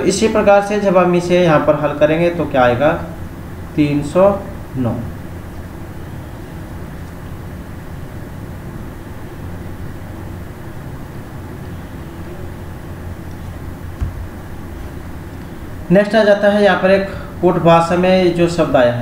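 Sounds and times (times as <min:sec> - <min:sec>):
background hum and hiss: 0:00.0 - 0:19.0
low thump: 0:14.0 - 0:14.4.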